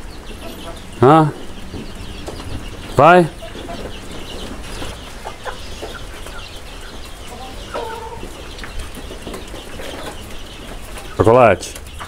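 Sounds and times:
steady low rumble: 0.0 - 6.8.

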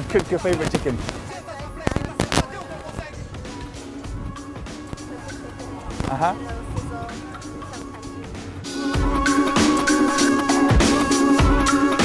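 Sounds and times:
sharp cracks: 0.0 - 3.8
faint voices: 0.0 - 9.0
background music: 0.0 - 12.0.

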